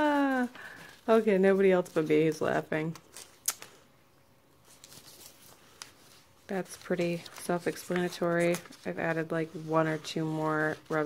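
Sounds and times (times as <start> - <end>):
paper rustling: 0.0 - 3.8, 4.5 - 11.0.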